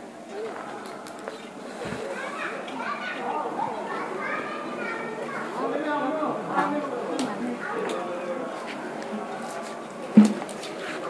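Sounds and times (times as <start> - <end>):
overlapping voices talking: 0.0 - 11.0.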